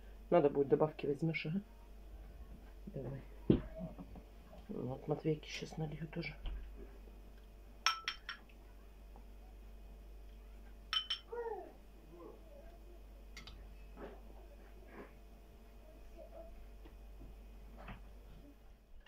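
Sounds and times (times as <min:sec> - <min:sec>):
metal spoon clinking on pot: 0:07.8 - 0:08.4, 0:10.9 - 0:11.3.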